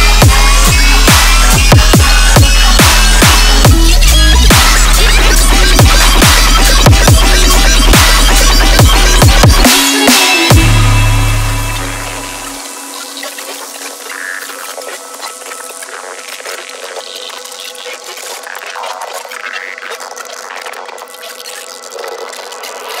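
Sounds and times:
deep bass note: 0.0s - 9.7s, 10.5s - 12.7s
hissy electronic texture: 0.0s - 23.0s.

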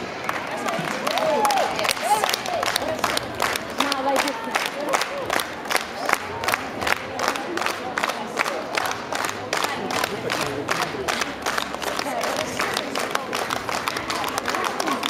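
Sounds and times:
hand claps: 0.3s - 15.0s.

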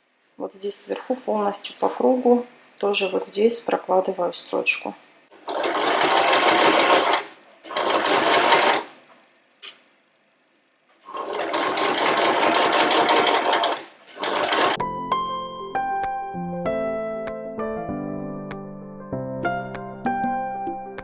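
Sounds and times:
sewing machine stitching: 5.4s - 9.0s, 11.0s - 14.8s
soft piano music: 14.8s - 21.0s.

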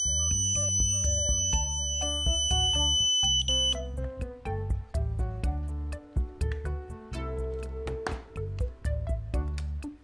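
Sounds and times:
high-pitched buzzer tone: 0.0s - 3.8s
background music with steady beat: 0.0s - 10.0s.

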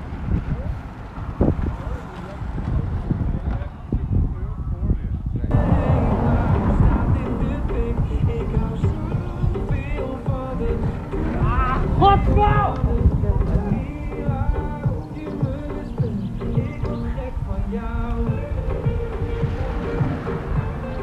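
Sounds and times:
wind buffeting microphone: 0.0s - 21.0s
music: 5.5s - 21.0s
person speaking: 10.6s - 14.2s.

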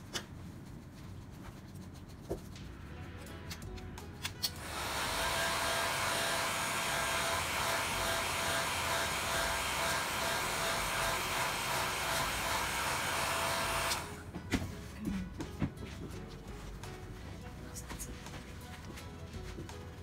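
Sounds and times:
hair dryer blowing: 4.6s - 14.2s.

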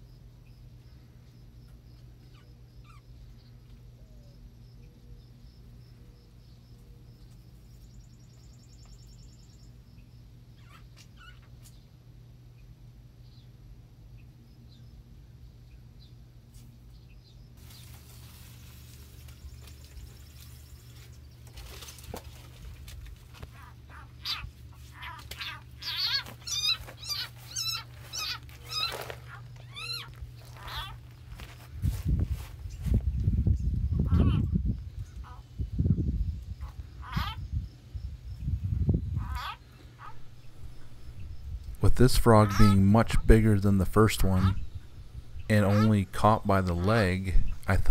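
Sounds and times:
steady low hum: 0.0s - 47.9s
bird chirping: 0.4s - 16.2s, 23.3s - 31.7s
low rumbling on microphone: 27.4s - 47.9s.

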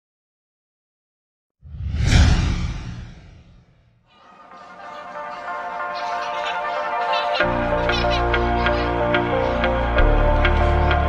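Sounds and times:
deep rumble: 1.7s - 3.7s
whoosh sound effect: 1.7s - 3.8s.

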